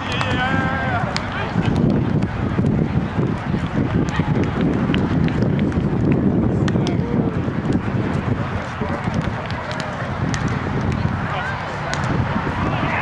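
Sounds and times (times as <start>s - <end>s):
wind on microphone: 0.0s - 13.0s
ball being hit taps: 9.0s - 11.0s.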